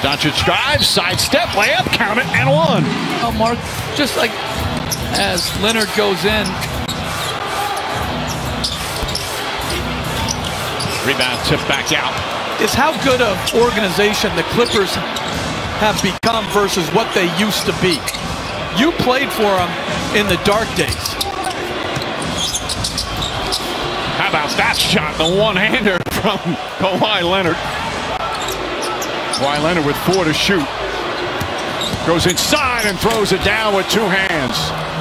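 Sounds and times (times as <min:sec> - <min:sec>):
arena crowd noise: 0:00.0 - 0:35.0.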